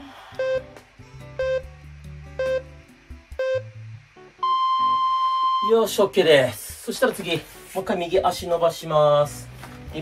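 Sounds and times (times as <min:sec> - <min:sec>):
background music: 0:00.0 - 0:10.0
countdown timer beeps: 0:00.4 - 0:00.8, 0:01.4 - 0:01.7, 0:02.4 - 0:02.7, 0:03.4 - 0:03.8, 0:04.4 - 0:05.7.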